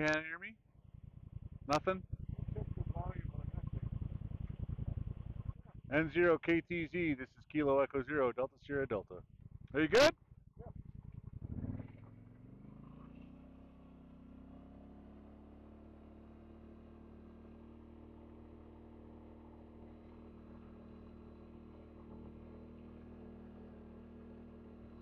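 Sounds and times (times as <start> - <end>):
quad engine accelerating: 0.8 - 7.2, 9.3 - 25.0.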